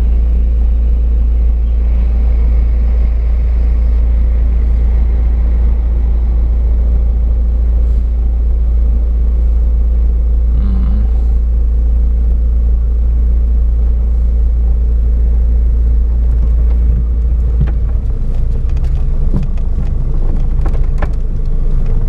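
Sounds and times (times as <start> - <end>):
engine and tyre rumble: 0.0 - 22.0
car knocks and rattles: 15.8 - 22.0.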